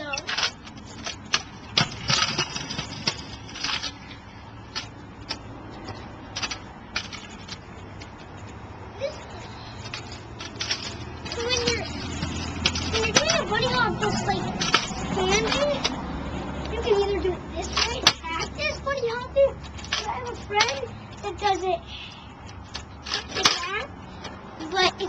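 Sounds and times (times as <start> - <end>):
kick scooter clacking on concrete: 0.0 - 25.0
car passing with low rumble: 1.6 - 17.7.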